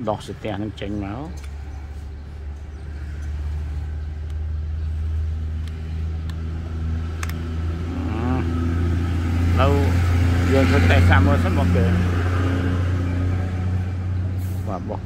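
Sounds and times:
engine drone: 0.8s - 15.0s.

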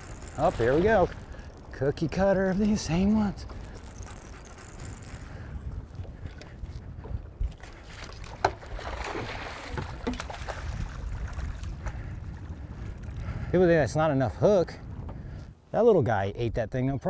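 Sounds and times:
wind rumbling on microphone: 0.0s - 17.0s
sharp clicks: 1.1s - 5.4s.

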